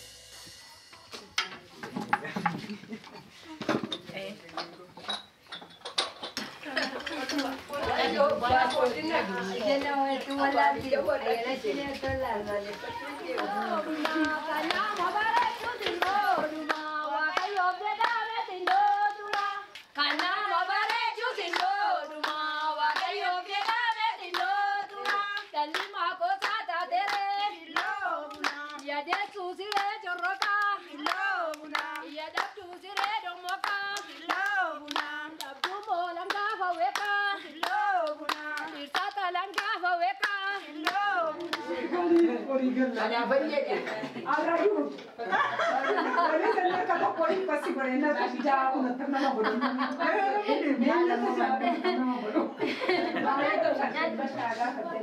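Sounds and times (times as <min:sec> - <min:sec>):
women singing together: 0:06.4 - 0:44.6
hand-clapping: 0:11.9 - 0:42.3.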